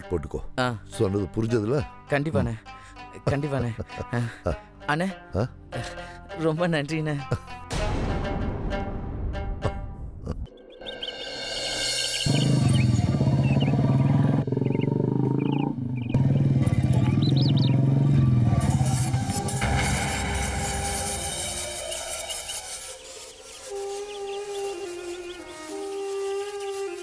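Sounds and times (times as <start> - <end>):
motorcycle engine running: 12.2 - 26.2
music with long held notes: 17.8 - 27.0.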